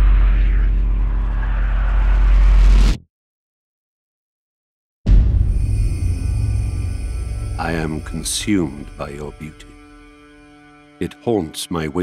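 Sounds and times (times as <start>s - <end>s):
deep sustained rumble: 5.1s - 10.2s
steady low hum: 5.4s - 10.2s.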